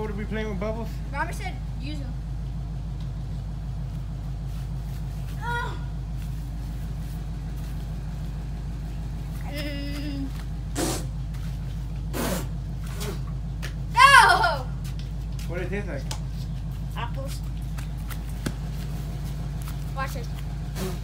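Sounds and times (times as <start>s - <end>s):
low mechanical hum: 0.0s - 21.0s
short hissy bursts: 10.7s - 11.2s, 12.1s - 13.2s.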